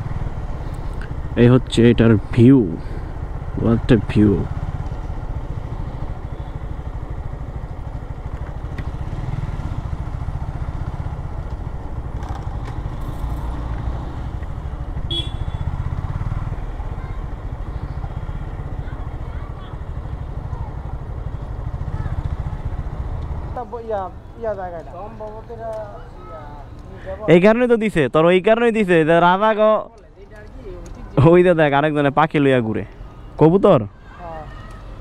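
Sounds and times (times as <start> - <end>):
motorcycle engine rumbling: 0.0 - 35.0.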